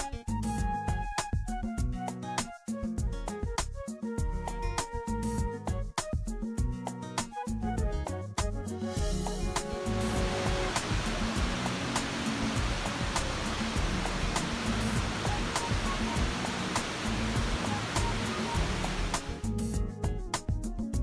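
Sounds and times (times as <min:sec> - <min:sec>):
music with steady beat: 0:00.0 - 0:21.0
whitewater rushing: 0:09.8 - 0:19.4.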